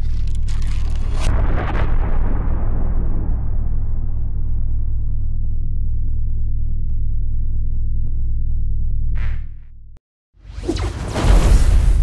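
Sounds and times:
deep low rumble: 0:00.0 - 0:09.9.

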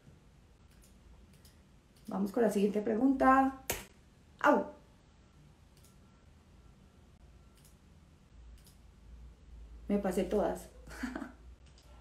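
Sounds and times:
low steady hum: 0:00.0 - 0:12.0
woman speaking: 0:02.1 - 0:03.7, 0:04.4 - 0:04.8, 0:09.8 - 0:10.9.

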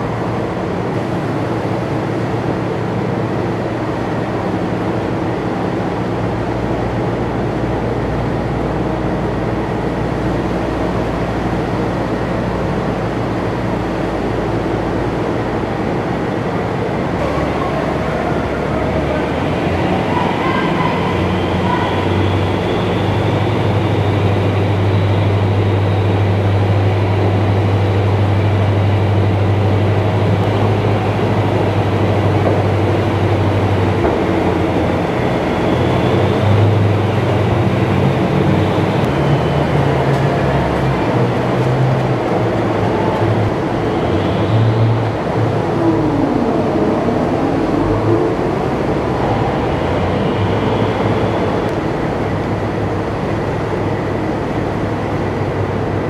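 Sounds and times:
diesel engine running under load: 0:00.0 - 0:56.0
steel tracks running over deck: 0:00.0 - 0:56.0.

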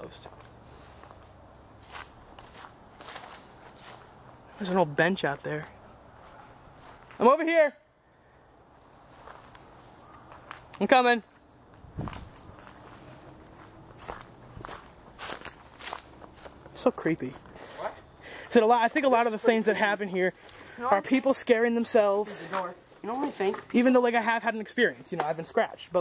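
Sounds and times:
footsteps through weeds: 0:01.8 - 0:04.8, 0:06.2 - 0:07.2, 0:11.9 - 0:17.4.

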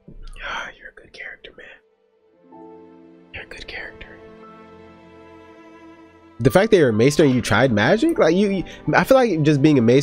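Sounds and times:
quiet string music: 0:00.0 - 0:10.0
person whispering: 0:00.3 - 0:01.8, 0:03.4 - 0:04.3.

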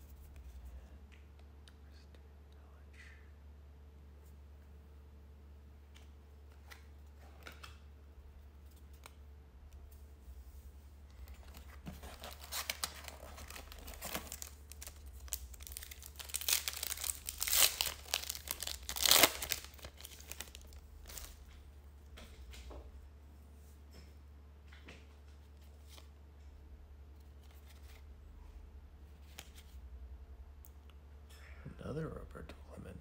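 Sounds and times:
wrapper crinkling and ripping: 0:11.2 - 0:21.5.

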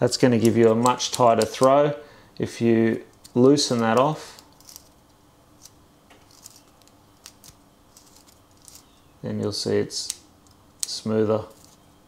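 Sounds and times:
small metallic clicks and scrapes: 0:05.6 - 0:08.9.

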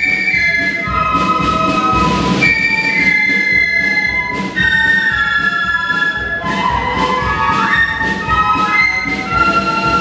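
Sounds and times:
drums beating: 0:00.0 - 0:10.0
flute band playing: 0:00.0 - 0:10.0.

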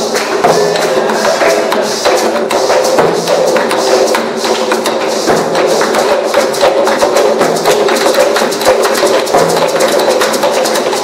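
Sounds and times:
bass drum struck with sticks: 0:00.0 - 0:10.0
congas played by hand: 0:00.0 - 0:11.0.

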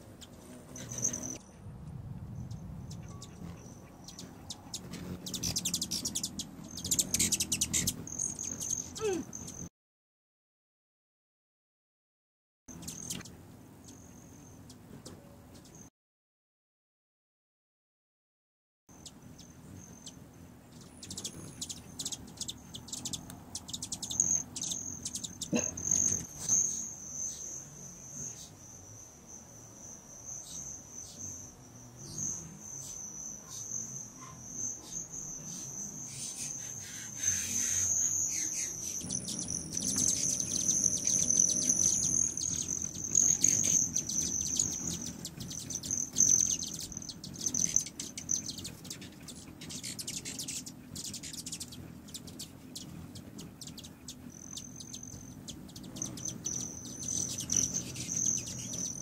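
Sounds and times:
hummingbird chip calls: 0:00.0 - 0:01.4, 0:02.5 - 0:09.7, 0:12.7 - 0:15.8, 0:19.0 - 0:59.0
hummingbird wing hum: 0:00.0 - 0:09.7, 0:12.7 - 0:15.8, 0:19.0 - 0:59.0.

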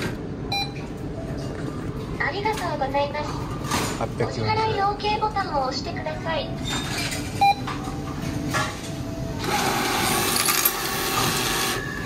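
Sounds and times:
machine dispensing change whirring: 0:06.6 - 0:12.0.

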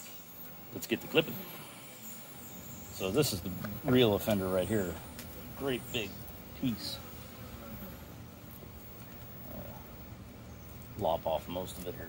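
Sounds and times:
faint background noise: 0:00.0 - 0:12.0
steady low hum: 0:00.0 - 0:12.0.

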